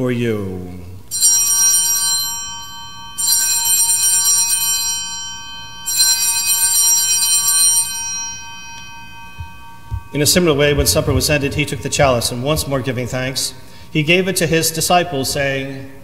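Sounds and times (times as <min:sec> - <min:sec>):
altar bells ringing: 0:01.1 - 0:16.0.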